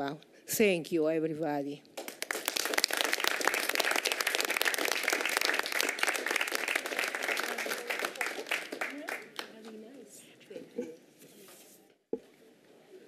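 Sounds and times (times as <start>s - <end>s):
people clapping: 2.0s - 9.8s.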